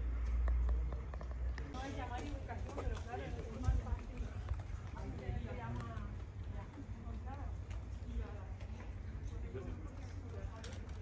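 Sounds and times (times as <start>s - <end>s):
wind rumble on microphone: 2.4s - 6.8s.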